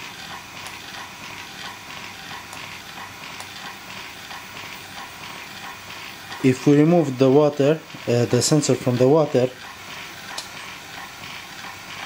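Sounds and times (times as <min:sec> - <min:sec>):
dosing pump mechanical whir: 0:00.0 - 0:12.0.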